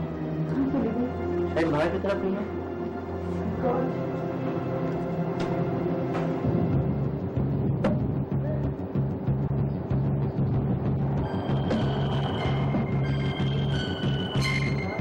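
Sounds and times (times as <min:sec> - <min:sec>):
low pulsing beat: 0:05.2 - 0:15.0
high held notes: 0:10.6 - 0:15.0.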